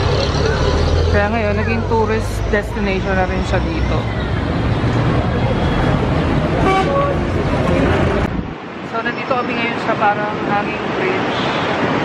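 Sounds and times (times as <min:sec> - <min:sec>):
road traffic rumble: 0:00.0 - 0:12.0
horn toot: 0:06.6 - 0:07.2.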